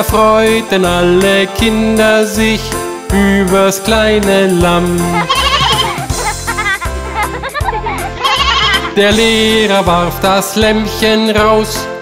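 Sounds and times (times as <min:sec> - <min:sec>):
instrumental children's music: 0:00.0 - 0:12.0
cartoon lamb bleating: 0:05.1 - 0:06.2, 0:08.2 - 0:09.0.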